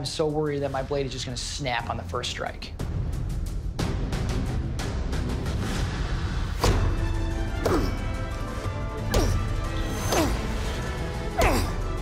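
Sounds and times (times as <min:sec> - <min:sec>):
dramatic music with steady beat: 0:00.0 - 0:12.0
knife chopping into wooden log: 0:07.6 - 0:08.0.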